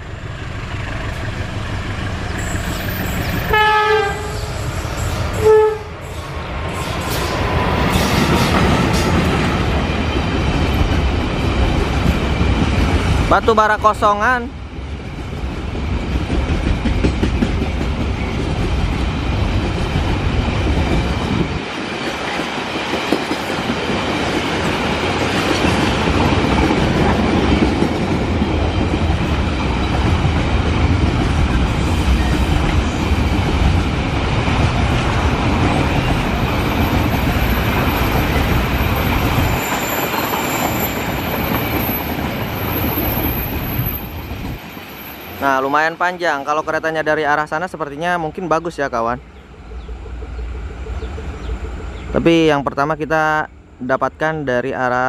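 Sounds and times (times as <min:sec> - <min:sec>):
train wheels rumbling on track: 0:00.0 - 0:55.0
high wheel squeal: 0:02.2 - 0:08.3, 0:37.0 - 0:45.6.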